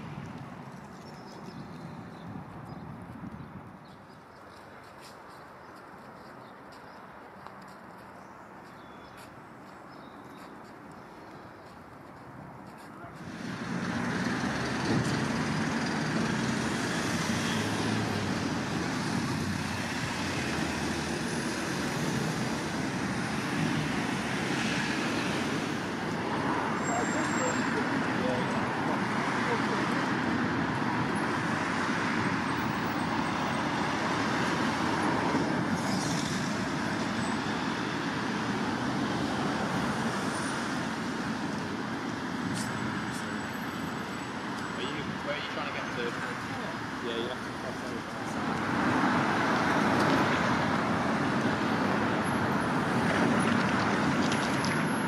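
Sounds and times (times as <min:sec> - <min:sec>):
road traffic noise: 0:00.0 - 0:55.0.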